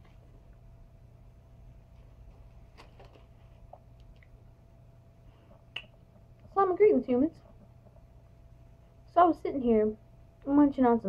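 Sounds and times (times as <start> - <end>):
finger snap: 5.7 - 6.0
woman speaking: 6.5 - 7.5, 9.1 - 11.0.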